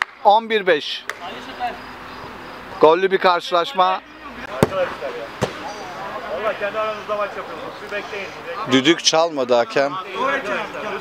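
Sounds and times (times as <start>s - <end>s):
players calling out: 4.4s - 6.4s
football kick thuds: 4.5s - 5.8s.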